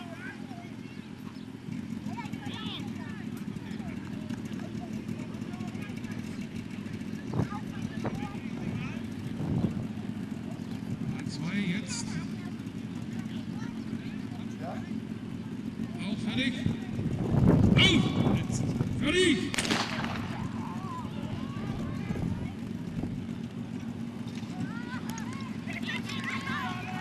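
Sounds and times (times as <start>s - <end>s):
fire pump engine drone: 0.0s - 27.0s.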